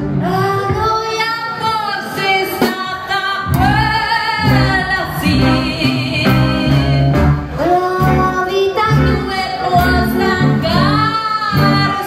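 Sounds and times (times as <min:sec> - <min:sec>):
upright bass: 0:00.0 - 0:00.4, 0:03.5 - 0:12.0
rockabilly band playing: 0:03.5 - 0:12.0.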